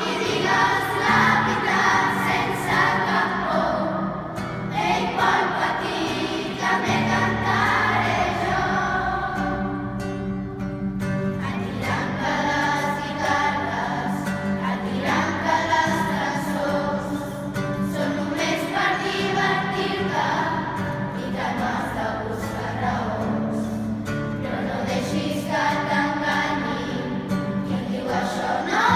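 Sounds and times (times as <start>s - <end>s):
children's choir singing: 0.0s - 28.9s.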